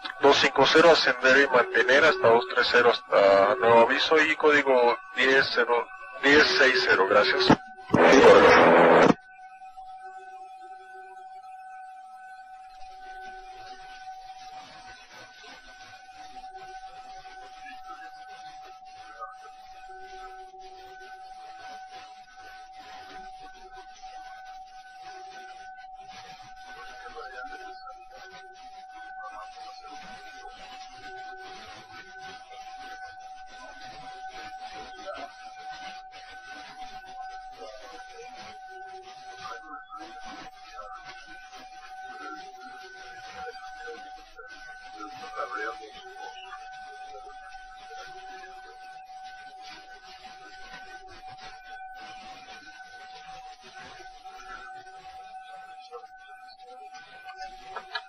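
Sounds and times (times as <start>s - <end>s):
weak tones: 0.0s - 9.2s
electrical hum tone: 0.0s - 10.2s
faint indistinct sounds: 0.0s - 58.0s.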